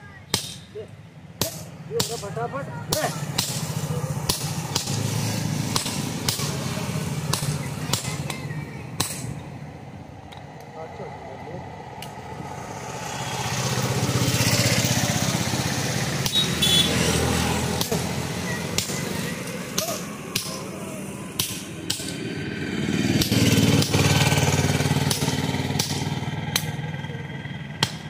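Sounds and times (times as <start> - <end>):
motor engine running: 2.5 - 28.0
hammer striking steel punch: 5.7 - 6.5.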